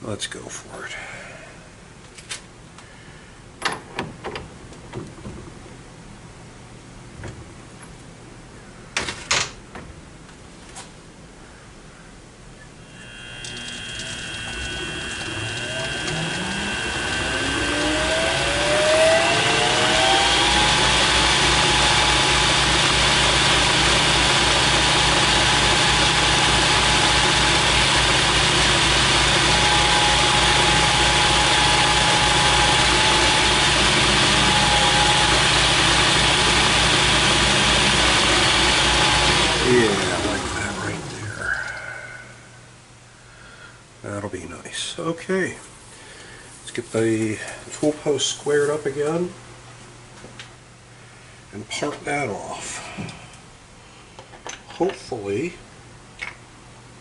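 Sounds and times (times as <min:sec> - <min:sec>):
metal lathe running: 0:12.8 - 0:41.6.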